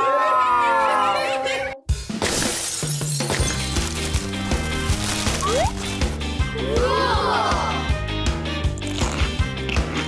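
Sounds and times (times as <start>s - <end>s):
background music with bass line: 3.9s - 10.0s.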